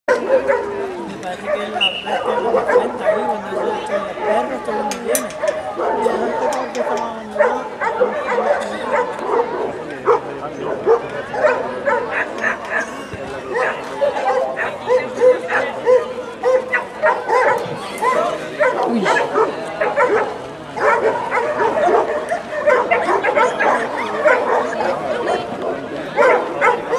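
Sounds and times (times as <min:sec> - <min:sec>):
dogs barking: 0:00.1 - 0:26.9
people talking: 0:00.1 - 0:26.9.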